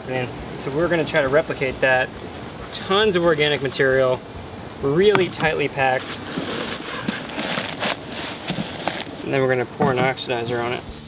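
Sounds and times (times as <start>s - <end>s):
dry straw rustling and crackling: 0.0s - 9.4s
straw crunching: 5.0s - 9.3s.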